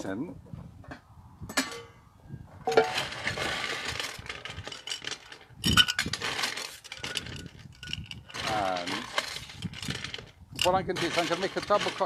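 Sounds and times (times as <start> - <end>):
ice cubes clinking in glass: 3.0 - 12.0.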